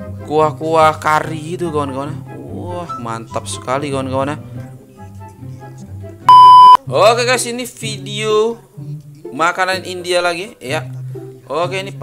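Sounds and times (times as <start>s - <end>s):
quiet background music: 0.0s - 12.0s
loud electronic beep: 6.3s - 6.8s.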